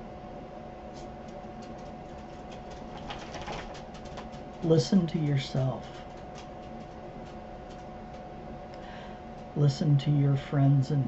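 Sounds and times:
background hum and hiss: 0.0 - 11.0
faint constant whine: 0.0 - 11.0.

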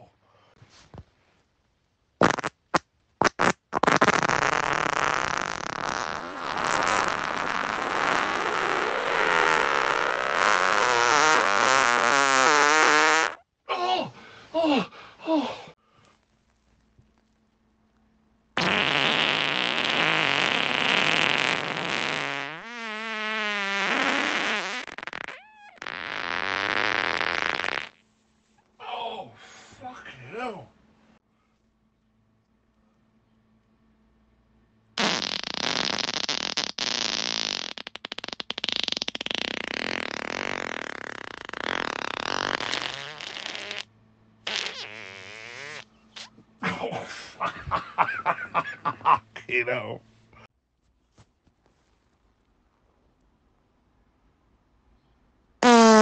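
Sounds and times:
long human fart: 2.2 - 13.5, 18.6 - 28.0, 35.0 - 46.4, 55.6 - 56.0.

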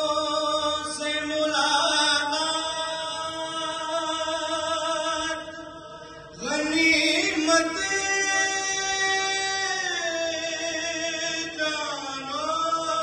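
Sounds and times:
solo voice chanting a lament: 0.0 - 13.0.

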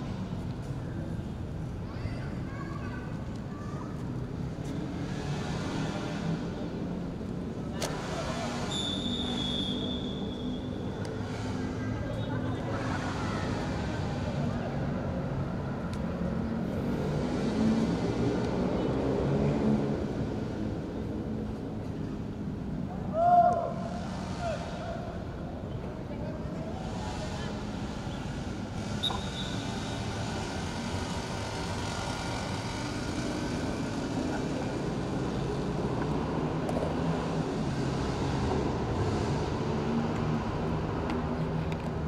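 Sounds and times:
referee's whistle blast: 8.7 - 10.7
players shouting and calling: 22.9 - 25.3.

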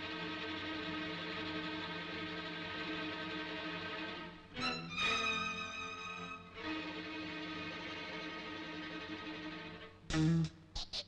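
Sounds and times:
held string chords: 0.0 - 10.8.

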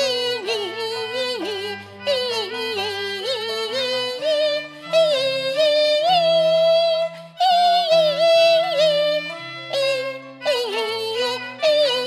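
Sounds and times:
instrumental accompaniment: 0.0 - 12.0
woman singing opera with vibrato: 0.0 - 12.0.

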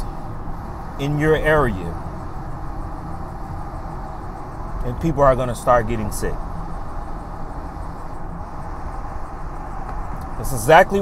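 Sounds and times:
vehicle cabin rumble: 0.0 - 11.0.

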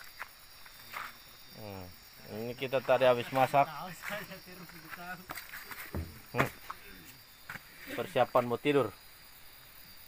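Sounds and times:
night insects droning: 0.0 - 10.0
short low thump: 5.9 - 6.6.

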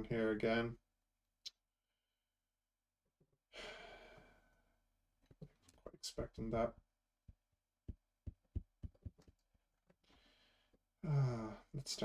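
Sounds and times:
long breathy sigh: 3.5 - 4.6.

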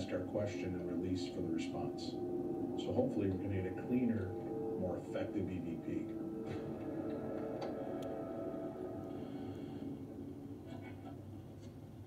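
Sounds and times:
low steady drone with held tones: 0.0 - 12.0.

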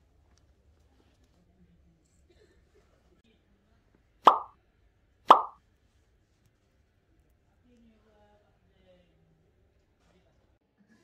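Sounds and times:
bright pop sound effects: 4.3 - 4.5, 5.3 - 5.6.

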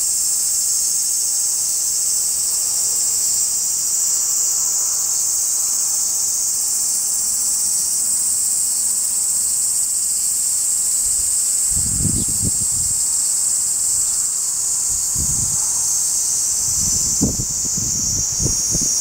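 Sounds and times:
cicadas chorus: 0.0 - 19.0.

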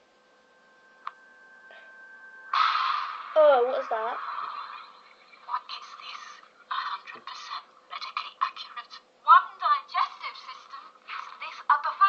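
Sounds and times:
tinny film trailer soundtrack: 0.9 - 6.3.

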